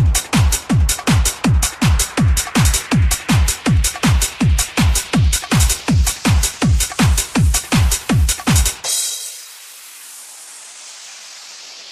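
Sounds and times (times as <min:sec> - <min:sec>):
house beat: 0:00.0 - 0:11.9
steady high hiss: 0:08.9 - 0:11.9.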